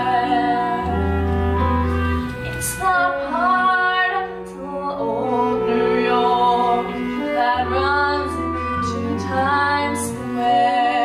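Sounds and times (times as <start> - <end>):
woman singing: 0.0 - 1.7, 2.6 - 11.0
theatre orchestra: 0.0 - 11.0.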